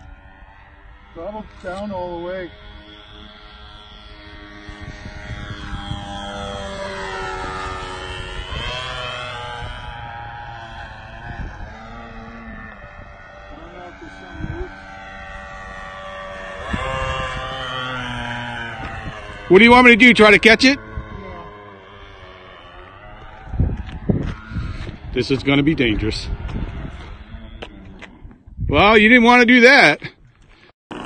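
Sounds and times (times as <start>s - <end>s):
model plane engine buzzing: 0.0s - 31.0s.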